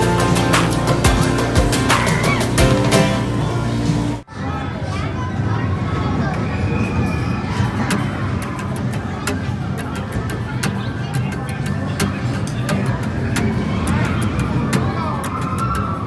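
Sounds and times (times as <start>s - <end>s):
music: 0.0s - 4.2s, 7.8s - 16.0s
murmur of voices: 0.0s - 16.0s.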